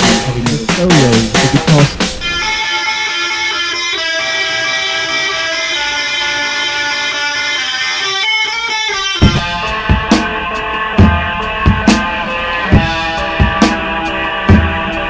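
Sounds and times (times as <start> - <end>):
drums: 0.0 - 2.7, 8.7 - 15.0
electric guitar chords: 0.0 - 15.0.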